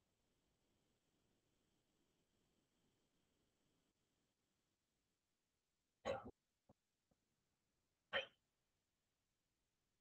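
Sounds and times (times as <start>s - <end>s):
person hiccuping or coughing: 6.0s - 6.3s.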